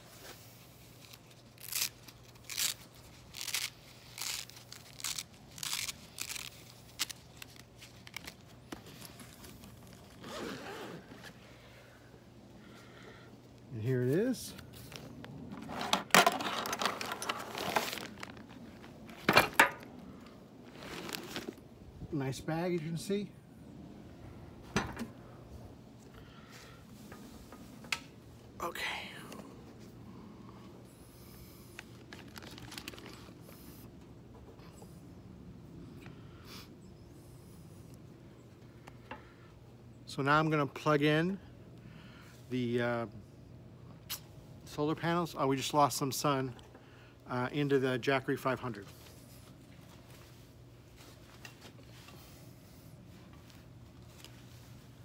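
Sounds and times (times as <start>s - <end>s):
sharp ripping strokes: 0.9s - 8.4s
soft fabric rustle: 48.7s - 55.0s.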